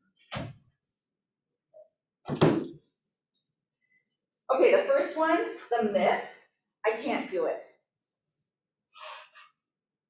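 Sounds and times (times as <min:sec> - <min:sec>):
person breathing: 0:09.0 - 0:09.6.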